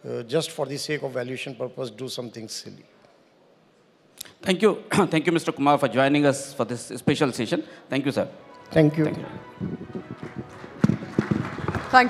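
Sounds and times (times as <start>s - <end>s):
faint hall background: 0.0s - 12.0s.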